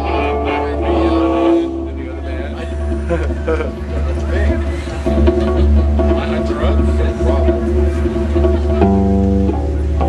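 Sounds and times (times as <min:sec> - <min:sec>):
people's voices: 0:00.0 - 0:10.0.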